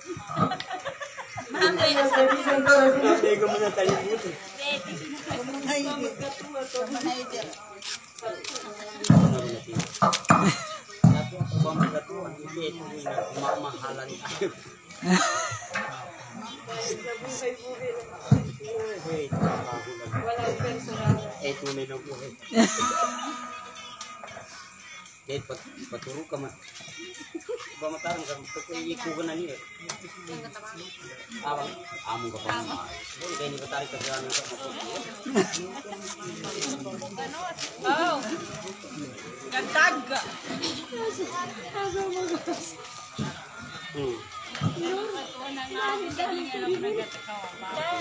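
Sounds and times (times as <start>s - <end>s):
quiet talking voices: 0.0s - 48.0s
person singing with vibrato: 22.4s - 25.8s.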